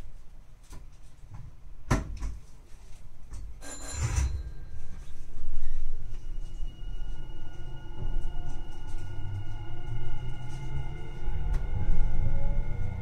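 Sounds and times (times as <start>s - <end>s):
train running rumble: 5.3s - 13.0s.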